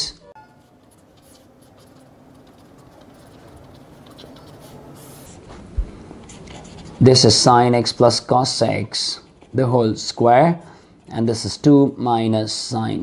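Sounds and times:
pen scratching on paper: 0.4 - 5.5, 6.2 - 10.3.

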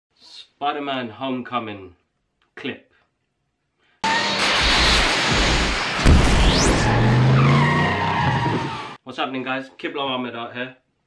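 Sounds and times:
high rising sweep: 4.0 - 9.0
rising low tone: 4.4 - 7.5
heavy hit: 4.4 - 8.7.

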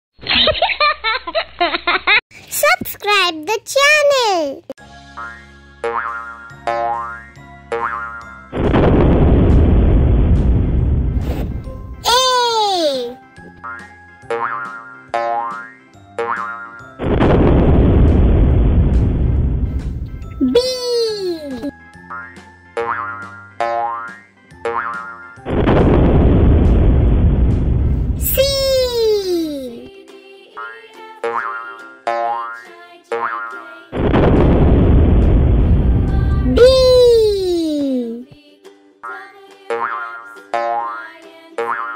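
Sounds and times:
cartoon background music: 2.6 - 8.7, 11.3 - 17.3, 20.0 - 26.6, 28.2 - 34.1, 36.0 - 41.9
rising boing sound effects: 5.8 - 8.2, 13.6 - 16.6, 22.8 - 25.1
low rumbling sound effect: 8.6 - 11.8, 17.0 - 20.3, 25.5 - 28.2, 34.0 - 36.6.

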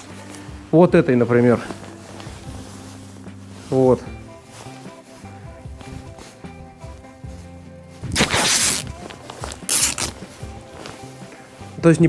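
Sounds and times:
background music: 0.0 - 12.0
wrapping material rustling: 0.0 - 12.0.

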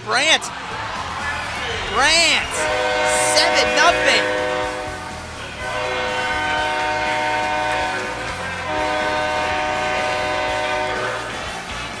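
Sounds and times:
arena goal horn blasts: 1.4 - 11.3.

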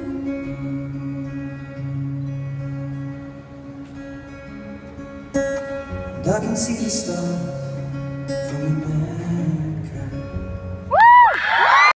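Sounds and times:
acoustic guitar playing: 0.0 - 11.0
audience screaming: 10.9 - 12.0.

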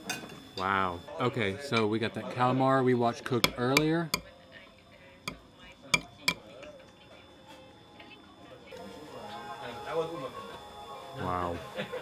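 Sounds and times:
faint music: 0.6 - 12.0.

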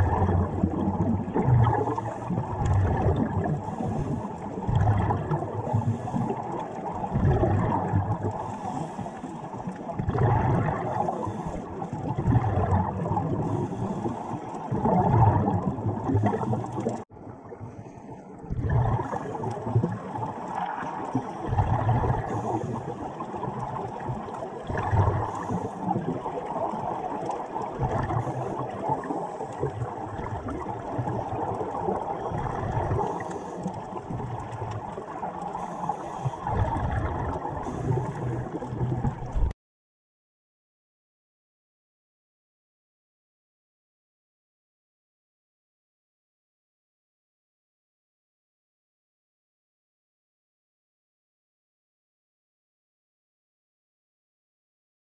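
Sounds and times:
underwater regulator bubbles: 0.0 - 39.5.

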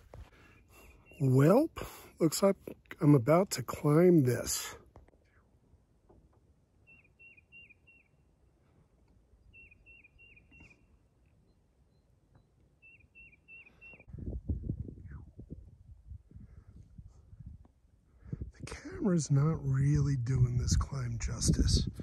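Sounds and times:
songbird whistling: 6.8 - 8.2, 9.4 - 14.1
low rumble on microphone: 14.1 - 22.0.

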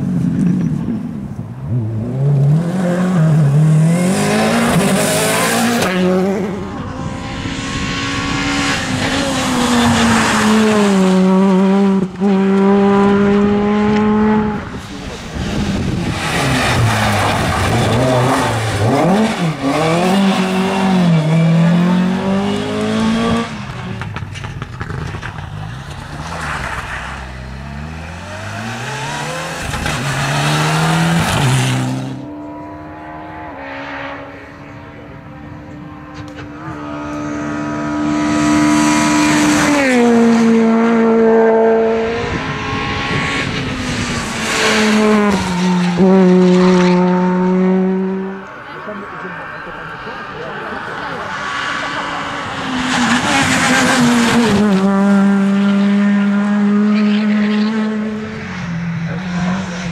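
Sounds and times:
rally car engines revving: 0.0 - 59.9.

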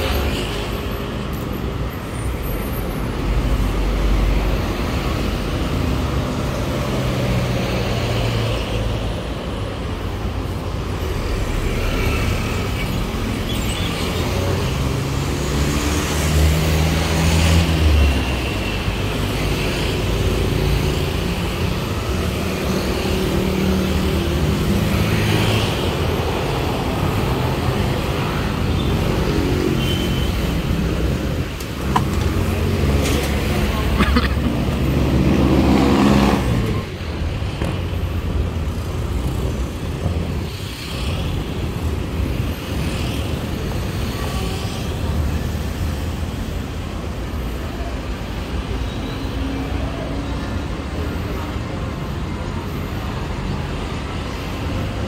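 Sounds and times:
road traffic noise: 0.0 - 55.0.

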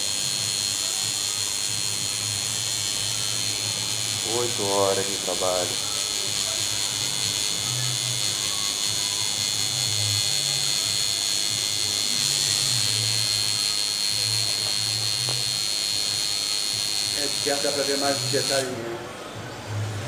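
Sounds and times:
tattoo machine buzzing: 0.0 - 18.8.

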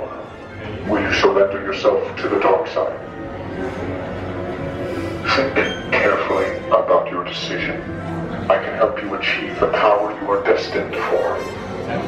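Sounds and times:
background music: 0.0 - 12.0
voices talking: 5.0 - 12.0.

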